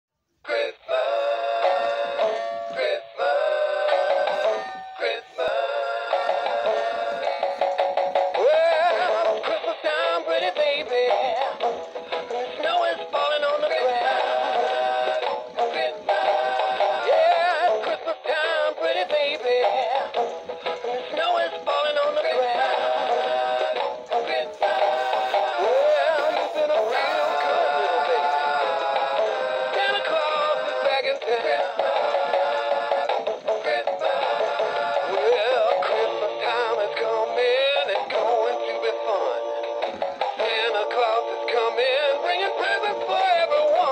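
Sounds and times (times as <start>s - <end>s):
toy singing through small speaker: 0.4s - 43.9s.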